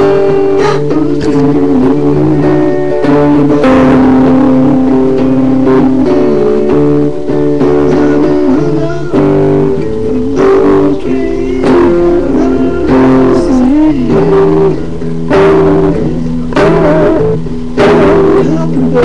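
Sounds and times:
electric guitar lead with bends: 0.0 - 19.0
low bass notes: 0.0 - 19.0.

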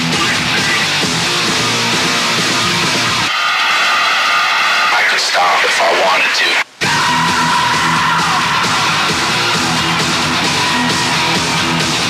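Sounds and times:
heavy guitar music: 0.0 - 3.3, 6.8 - 12.0.

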